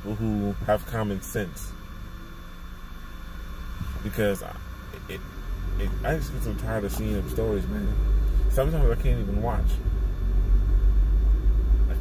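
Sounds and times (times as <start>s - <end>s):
car cabin low hum: 0.0s - 12.0s.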